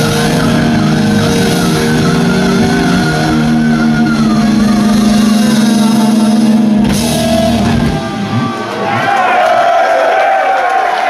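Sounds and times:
wavering high guitar note: 0.0s - 8.5s
distorted electric guitars chord: 0.0s - 8.6s
drums: 0.0s - 11.0s.

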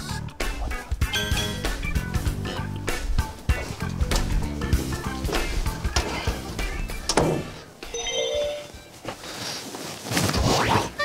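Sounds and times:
held bell-like tones: 1.1s - 1.8s, 7.9s - 8.9s.

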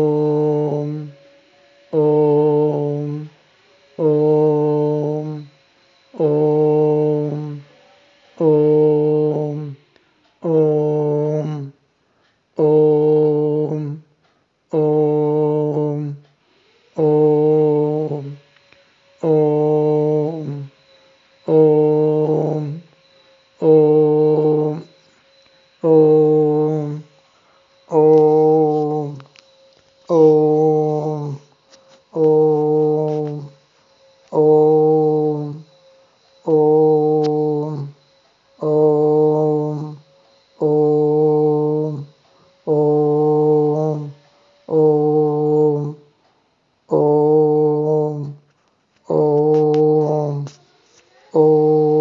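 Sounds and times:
man chanting long steady tones: 0.0s - 52.0s.

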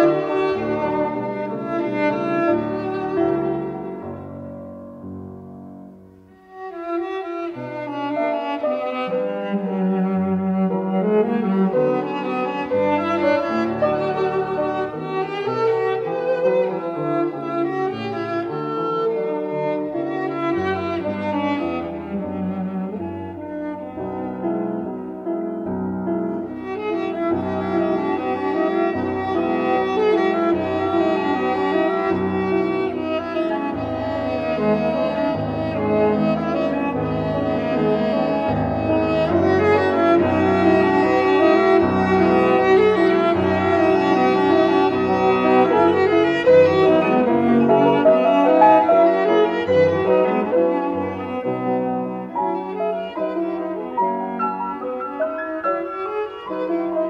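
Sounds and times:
cello playing classical piece: 0.0s - 57.0s
piano accompaniment: 0.0s - 57.0s.

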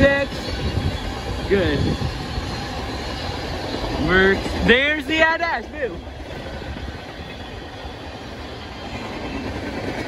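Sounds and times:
train wheels on rail: 0.0s - 10.0s.

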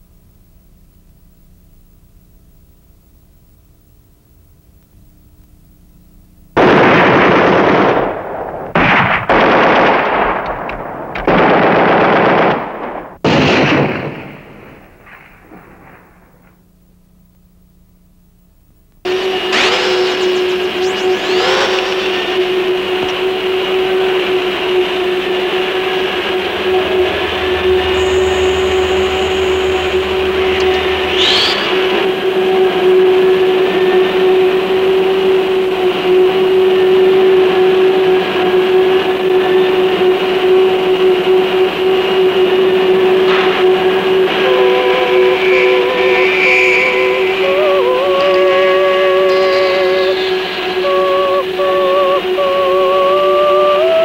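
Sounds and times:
loud steady drone: 6.6s - 17.3s, 19.0s - 54.0s
whistle-like sweeps: 19.1s - 35.3s, 43.1s - 54.0s.

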